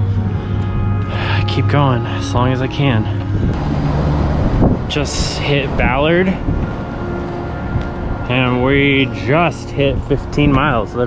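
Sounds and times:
background music: 0.0 - 11.0
road traffic passing: 0.0 - 11.0.

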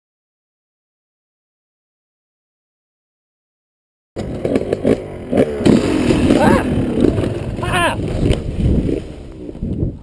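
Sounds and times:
dirt bike engine running: 4.2 - 10.0.

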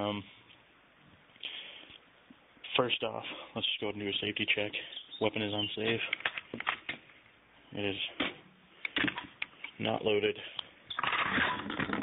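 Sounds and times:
rifle magazine clicking and rattling: 6.1 - 6.9.

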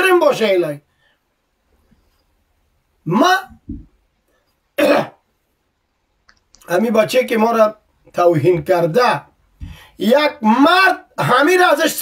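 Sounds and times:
person clearing throat: 4.8 - 5.2.

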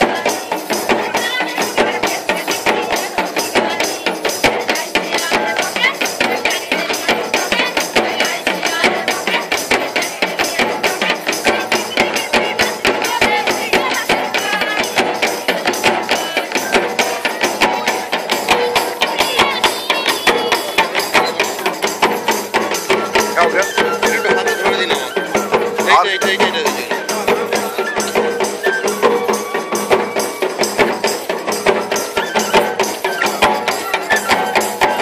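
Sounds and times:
drums beating fast rhythm: 0.0 - 35.0
jingling percussion: 0.0 - 35.0
wavering melody line: 19.9 - 35.0.

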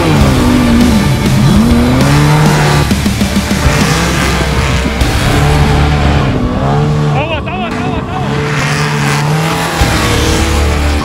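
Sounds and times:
truck engine at high revs passing: 0.0 - 11.0.

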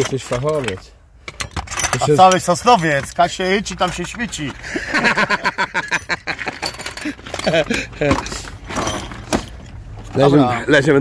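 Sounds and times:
metal tools clinking: 0.0 - 10.1
man talking: 1.9 - 4.6, 10.1 - 11.0
man laughing: 4.6 - 8.2.

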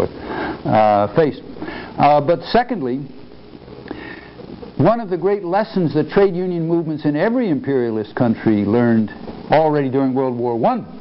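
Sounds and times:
man speaking: 0.0 - 3.2, 4.8 - 11.0
man sniffing: 3.9 - 4.4.

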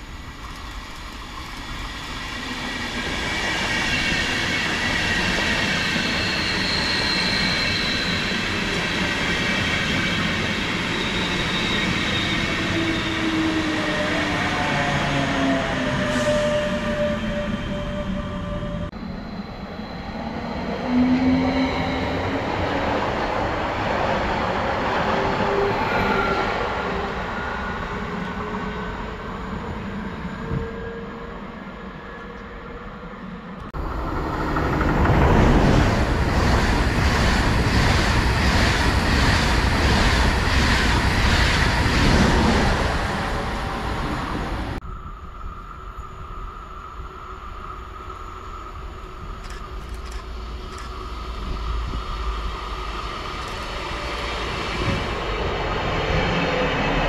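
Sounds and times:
train rail and wheel noise: 0.0 - 57.0.

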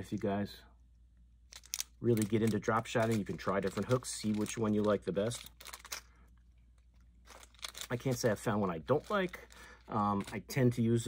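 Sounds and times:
person speaking: 0.0 - 0.8, 1.8 - 6.0, 7.3 - 11.0
packet crinkling and clicking: 1.5 - 10.6.

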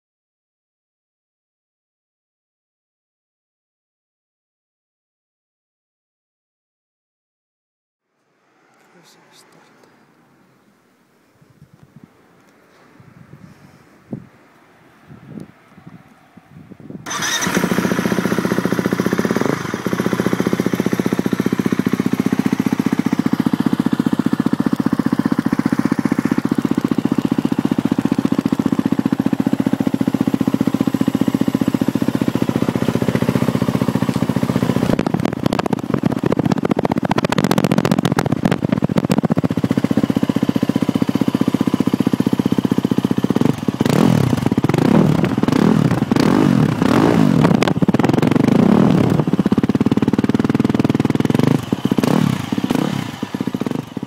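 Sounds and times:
engine revving: 17.0 - 54.0
motorcycle engine starting and idling: 17.0 - 54.0.

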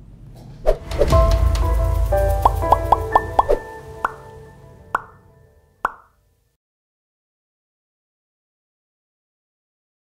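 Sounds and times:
short musical logo sting: 0.8 - 5.7.

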